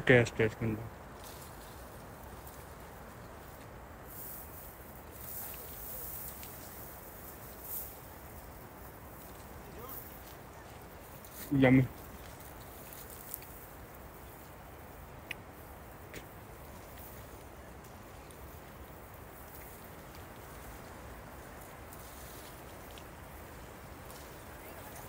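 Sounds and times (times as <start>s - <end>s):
faint outdoor background noise: 0.0s - 25.0s.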